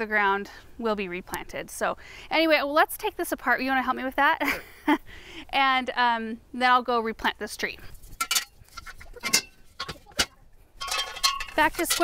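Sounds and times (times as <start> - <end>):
metal clicks and clinks: 9.2 - 12.0.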